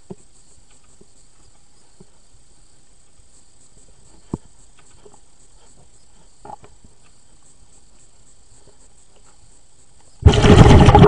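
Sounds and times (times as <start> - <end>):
faint high-pitched underwater hiss: 0.0 - 11.0.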